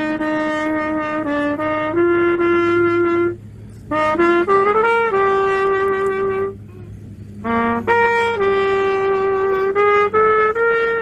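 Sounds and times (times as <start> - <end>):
solo trumpet melody: 0.0 - 11.0.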